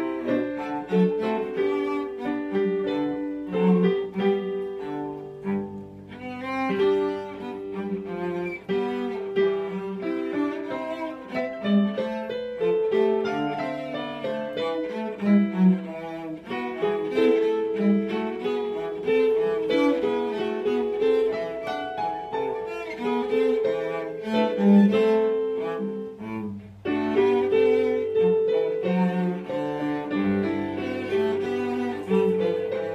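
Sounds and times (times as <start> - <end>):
cello bowed notes: 0.0 - 32.9
piano accompaniment: 0.0 - 32.9.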